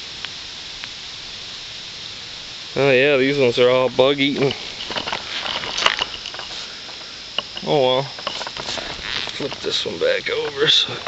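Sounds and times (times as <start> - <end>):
dry leaves rustling and crackling: 1.4 - 11.0.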